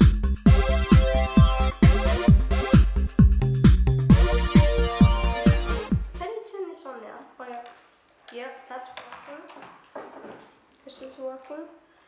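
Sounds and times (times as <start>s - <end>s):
electronic music: 0.0s - 6.2s.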